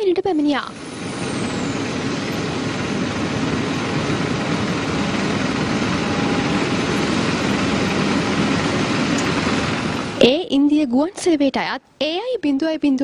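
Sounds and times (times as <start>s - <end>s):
jet airliner engine roar: 0.0s - 10.4s.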